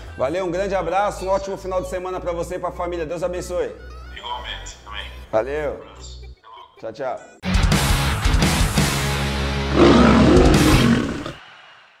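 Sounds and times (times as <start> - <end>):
music: 0.0 - 12.0
lion roaring: 9.7 - 11.4.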